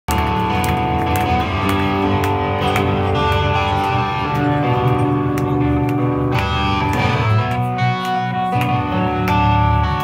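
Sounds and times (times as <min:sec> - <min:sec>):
live punk rock band: 0:00.1 - 0:10.0.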